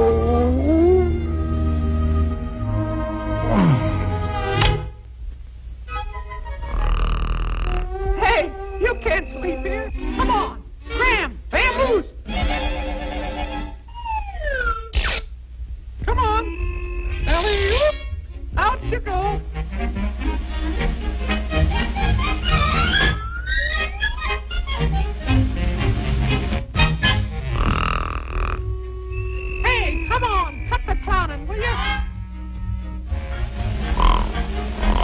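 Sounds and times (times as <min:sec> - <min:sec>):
cartoon score: 0:07.6 - 0:11.8, 0:27.4 - 0:32.2
held orchestral note: 0:07.9 - 0:10.6, 0:28.4 - 0:34.2.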